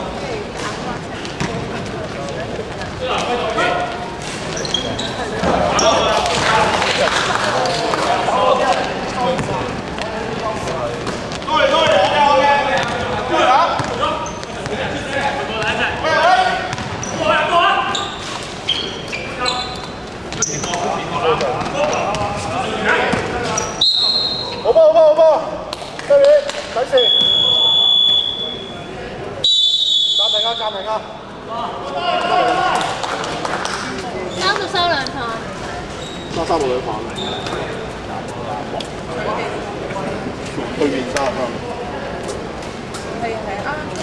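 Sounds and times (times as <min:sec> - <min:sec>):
basketball bouncing on court: 0:09.3 - 0:10.0, 0:12.8 - 0:14.8, 0:16.7 - 0:17.2
referee's whistle: 0:23.6 - 0:24.7, 0:27.0 - 0:28.8, 0:29.4 - 0:30.9.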